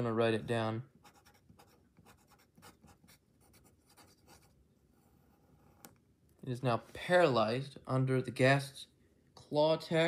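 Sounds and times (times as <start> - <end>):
pen scratching on paper: 1.0 - 5.9.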